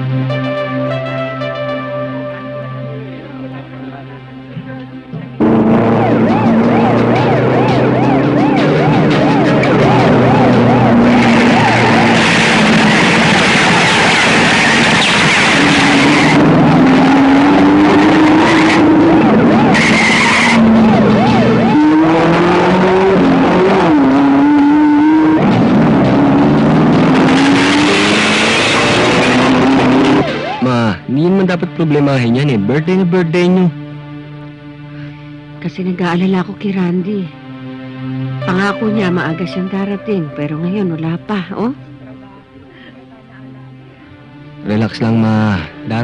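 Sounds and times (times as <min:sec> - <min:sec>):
car engines revving: 0:03.4 - 0:33.6
tyres skidding: 0:05.4 - 0:30.7.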